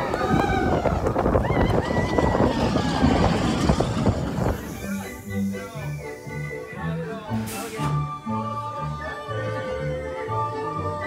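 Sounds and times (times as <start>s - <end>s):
roller coaster rattling rumble: 0.0s - 6.5s.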